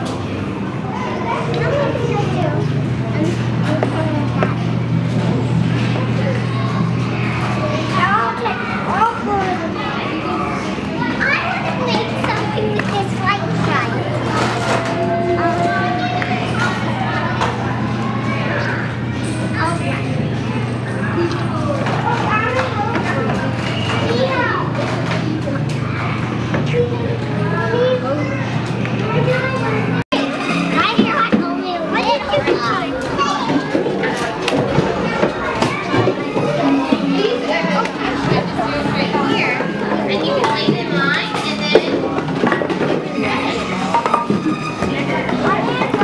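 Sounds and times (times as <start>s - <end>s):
children chattering and calling out: 0.0s - 46.0s.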